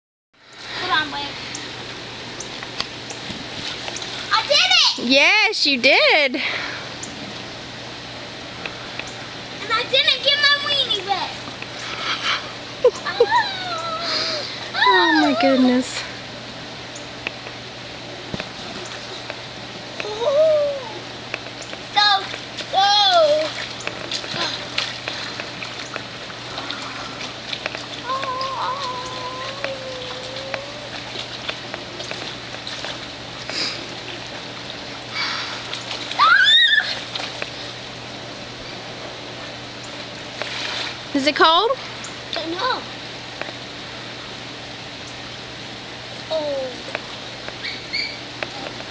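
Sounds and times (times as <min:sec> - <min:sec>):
pool water lapping: 0:00.5 - 0:48.9
low hum: 0:11.2 - 0:48.9
small water splashes: 0:21.7 - 0:37.8, 0:40.0 - 0:41.1
high-pitched wordless calls: 0:47.6 - 0:48.3.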